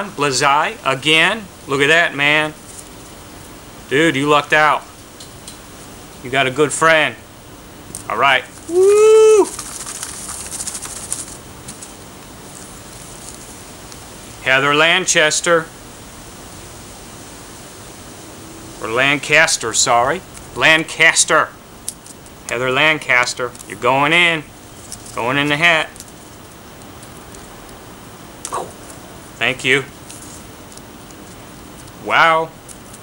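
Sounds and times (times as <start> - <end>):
faint steady hiss: 0.0 - 33.0
paper tickets rustling: 9.4 - 13.5, 22.0 - 23.9
paper rustling: 9.4 - 14.0, 24.7 - 27.5, 30.0 - 32.0.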